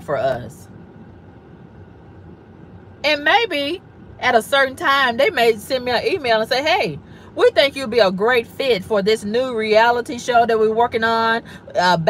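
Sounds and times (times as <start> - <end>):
car cabin low rumble: 0.0 - 12.0.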